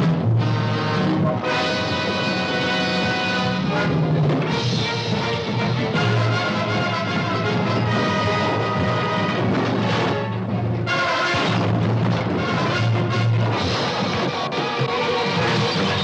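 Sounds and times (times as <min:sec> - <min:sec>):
orchestral music with brass: 0:00.0 - 0:16.0.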